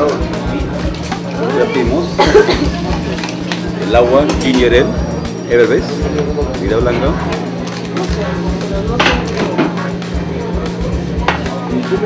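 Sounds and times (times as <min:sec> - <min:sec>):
background music with a beat: 0:06.0 - 0:12.0.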